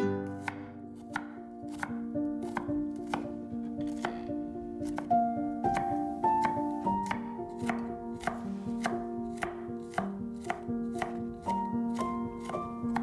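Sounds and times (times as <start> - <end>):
piano-like background music: 0.0 - 13.0
knife chopping on cutting board: 0.2 - 13.0.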